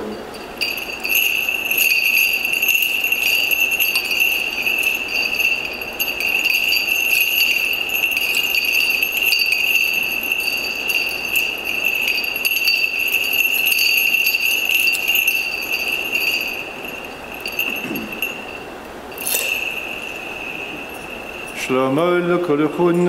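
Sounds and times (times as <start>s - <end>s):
chains clinking: 0.0s - 22.2s
censer bells jingling: 0.0s - 23.0s.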